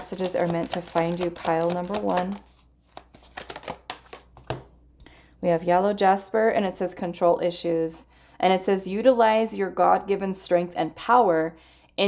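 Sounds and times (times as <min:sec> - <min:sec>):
cards clicking and tapping: 0:00.0 - 0:04.8.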